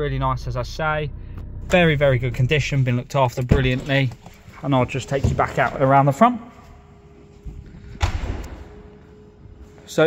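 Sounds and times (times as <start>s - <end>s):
car door slamming: 7.9s - 8.8s.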